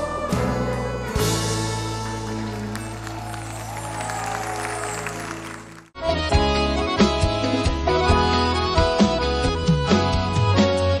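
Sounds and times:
live band holding chords: 0:00.0 - 0:11.0
audience applauding: 0:02.3 - 0:06.0.

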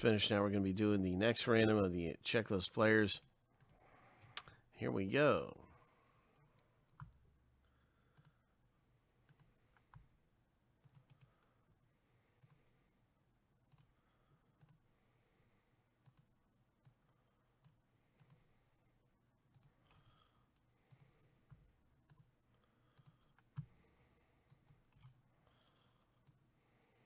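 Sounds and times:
computer mouse clicks: 0:03.2 - 0:04.6, 0:08.1 - 0:08.4, 0:09.2 - 0:10.1, 0:10.8 - 0:11.4, 0:12.4 - 0:12.6, 0:13.6 - 0:14.0, 0:14.6 - 0:14.8, 0:16.0 - 0:18.5, 0:19.5 - 0:20.1, 0:20.9 - 0:22.3, 0:22.9 - 0:23.8, 0:24.4 - 0:25.2, 0:26.2 - 0:26.4.

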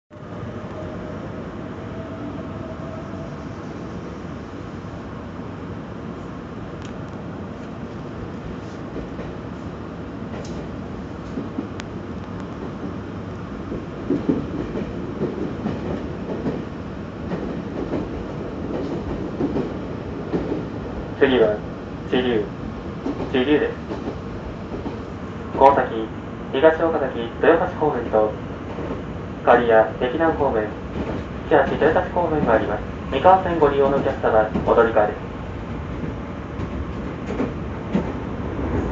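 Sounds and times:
train wheels rumbling on rail: 0:00.2 - 0:38.9.

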